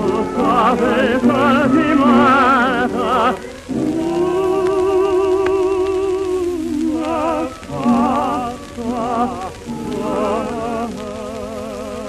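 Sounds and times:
low sustained accompaniment: 0.0 - 12.0
old recording of vocal melody: 0.0 - 12.0
record surface crackle: 0.0 - 12.0.

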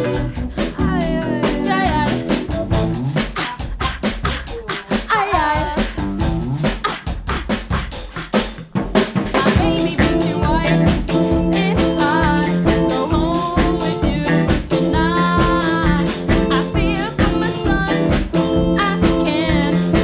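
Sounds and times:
electric guitar: 0.0 - 2.9, 9.6 - 20.0
bass guitar: 0.0 - 8.1, 9.4 - 20.0
drum kit beat: 0.0 - 20.0
keyboard: 9.6 - 20.0.

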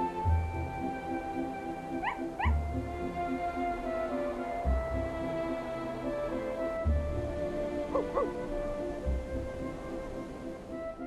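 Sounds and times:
background music: 0.0 - 11.0
puppy yipping: 2.0 - 2.6, 7.9 - 8.4.

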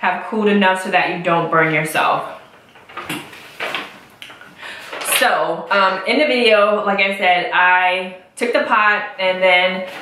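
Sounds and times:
paper rustling: 2.8 - 4.0.

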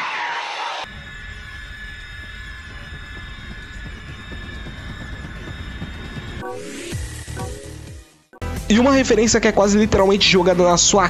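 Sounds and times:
high sustained tone: 0.9 - 8.4
dense low rumble: 0.9 - 8.8.

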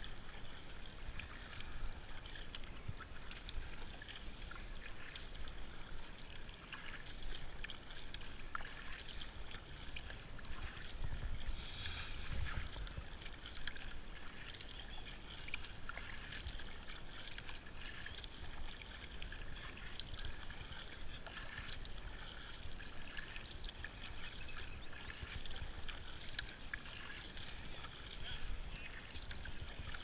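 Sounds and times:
paddle splashing through water: 0.0 - 30.0.

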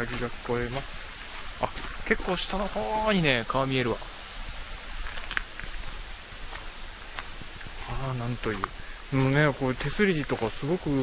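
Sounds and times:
light footsteps on path: 0.0 - 11.0
mountain stream rushing: 0.0 - 11.0.

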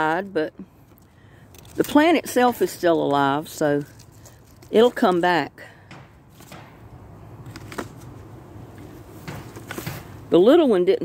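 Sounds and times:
camera handling rustling: 7.4 - 8.2.

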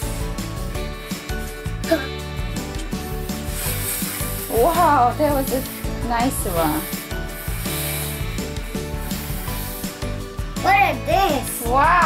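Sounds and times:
air blown through straws: 0.0 - 10.4
background music: 0.0 - 12.0.

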